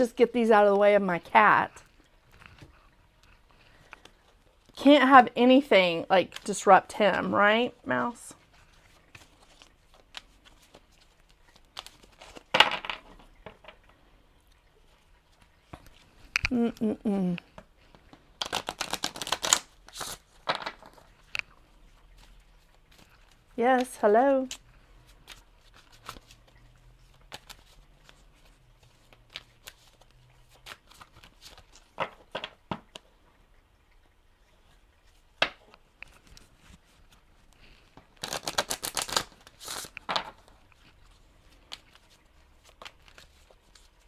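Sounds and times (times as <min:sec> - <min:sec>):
cards being shuffled: 0:08.6 - 0:13.0, 0:18.4 - 0:21.5, 0:25.2 - 0:32.6, 0:35.4 - 0:44.0.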